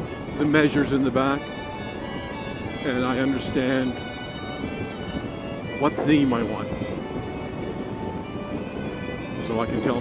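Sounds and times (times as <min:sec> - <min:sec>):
soft background music: 0:00.0 - 0:10.0
wind and road noise: 0:00.0 - 0:10.0.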